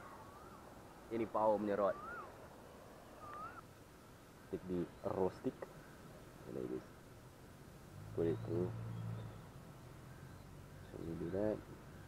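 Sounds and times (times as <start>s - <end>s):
whistled bird calls: 0.0s - 2.4s, 3.1s - 3.6s, 8.2s - 12.0s
faint steady hiss: 0.0s - 12.0s.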